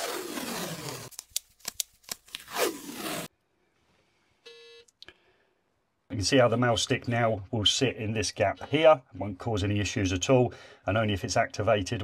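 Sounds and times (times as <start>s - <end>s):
adhesive liner peeling: 0.0s - 3.3s
short buzzy beep: 4.5s - 4.9s.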